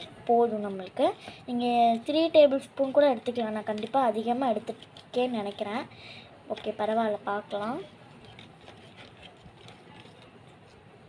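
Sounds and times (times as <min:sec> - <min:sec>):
plastic spoon scraping cup: 0:03.6 - 0:05.7, 0:06.5 - 0:10.8.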